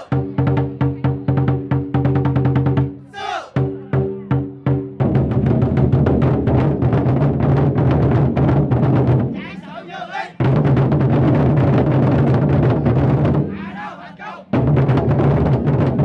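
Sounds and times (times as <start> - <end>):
voices: 3.1 - 3.6, 9.4 - 10.4, 13.6 - 14.5
large drums rolling: 4.0 - 9.4, 10.4 - 13.6, 14.5 - 16.0.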